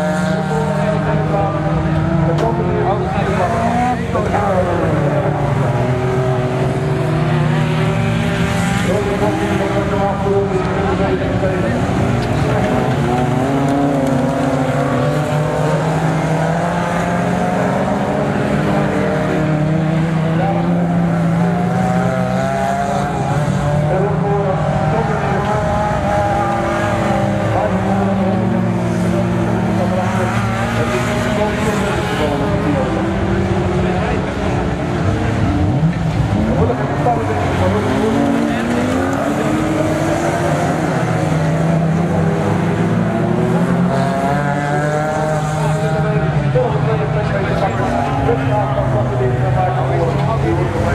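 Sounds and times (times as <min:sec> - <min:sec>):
race car engines revving: 0:00.0 - 0:50.9.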